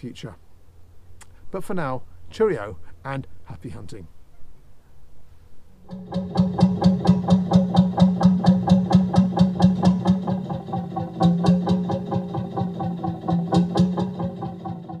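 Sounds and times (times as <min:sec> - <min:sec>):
boat diesel engine chugging: 0:05.9 - 0:15.0.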